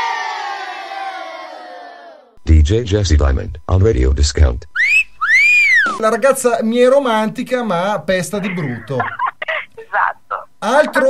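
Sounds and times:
crowd cheering: 0:00.0 - 0:02.4.

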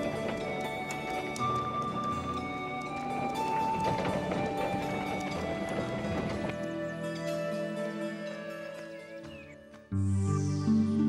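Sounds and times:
hoofbeats clip-clopping: 0:00.0 - 0:09.8
cartoon soundtrack music: 0:00.0 - 0:11.0.

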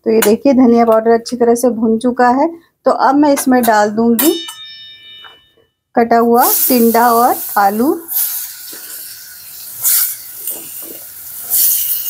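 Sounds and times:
vegetables sizzling in hot oil: 0:06.3 - 0:12.0.

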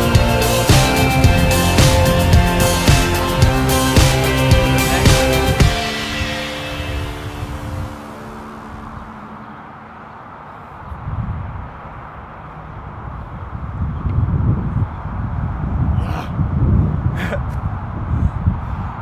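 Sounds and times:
background music with held notes: 0:00.0 - 0:09.9.

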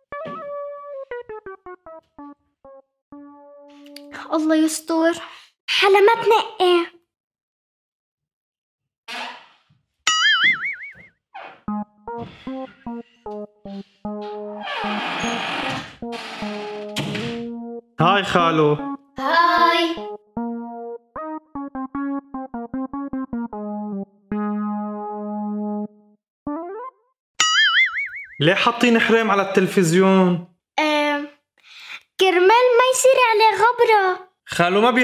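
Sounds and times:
plucked comic music cue: 0:17.4 - 0:27.8
upward-sliding cartoon boing: 0:26.6 - 0:28.4.

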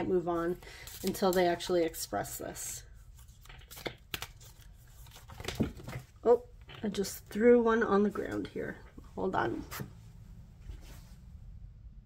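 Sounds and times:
cards being shuffled: 0:00.8 - 0:02.0, 0:03.0 - 0:06.1.

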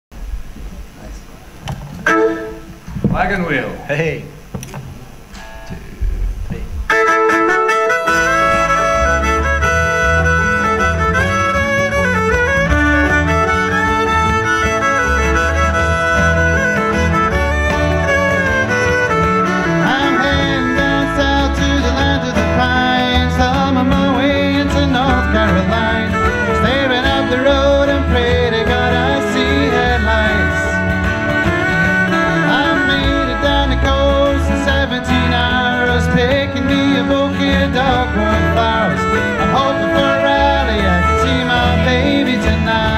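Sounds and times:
electric bass: 0:00.1 - 0:42.9
plucked strings: 0:01.6 - 0:03.8, 0:04.4 - 0:42.9
strummed acoustic guitar: 0:01.6 - 0:42.9
fiddle melody: 0:01.8 - 0:04.4, 0:06.9 - 0:42.9.

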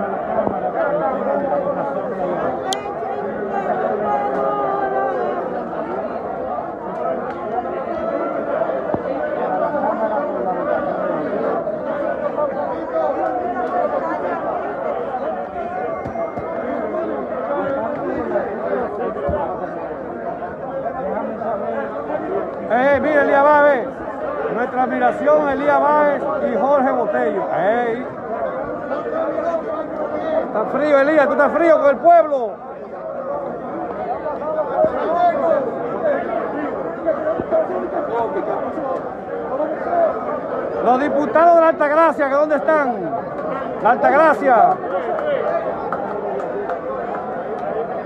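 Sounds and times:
hubbub of overlapping voices: 0:00.0 - 0:48.0.

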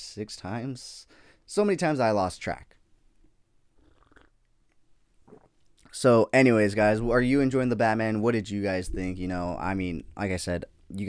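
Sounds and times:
sipping and swallowing coffee: 0:03.7 - 0:05.9.

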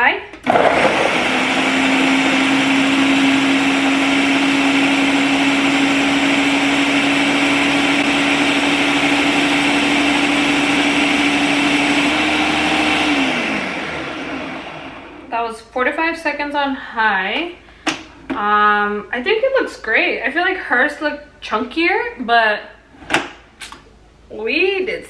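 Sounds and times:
blender running: 0:00.4 - 0:15.3.

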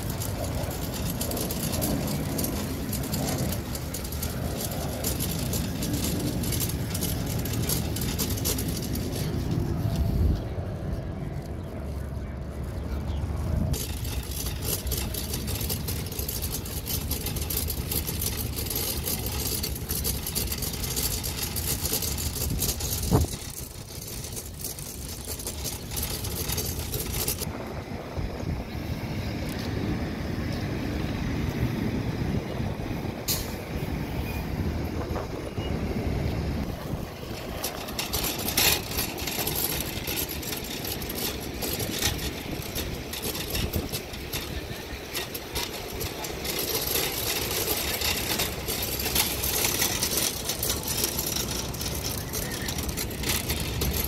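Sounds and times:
vehicles running and passing: 0:00.0 - 0:54.0.

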